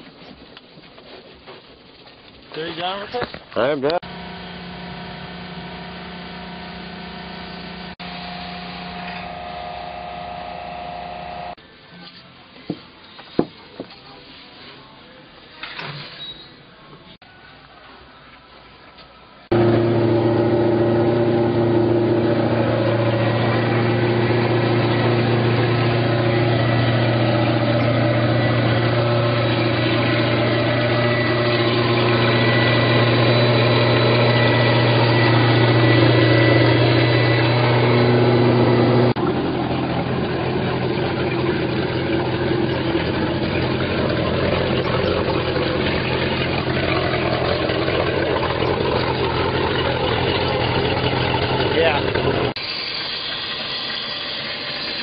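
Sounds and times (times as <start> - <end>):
boat engine running: 19.5 - 53.8.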